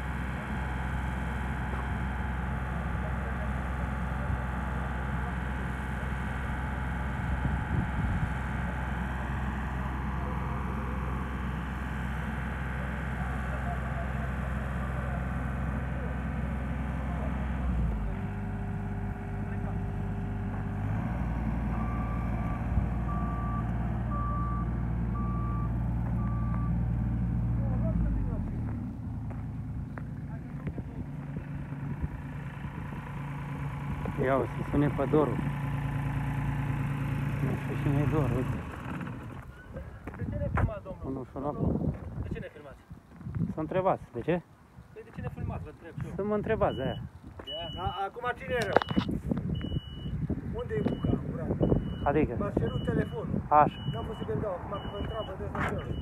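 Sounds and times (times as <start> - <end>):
loader engine running: 0.0 - 56.0
reversing alarm beeping: 21.7 - 26.9, 46.6 - 48.1, 48.7 - 56.0.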